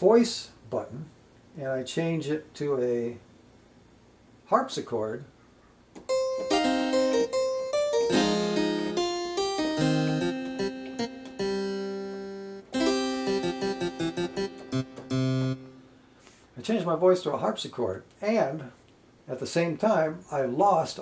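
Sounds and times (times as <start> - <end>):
digital piano harpsichord voice: 6.1 - 15.9.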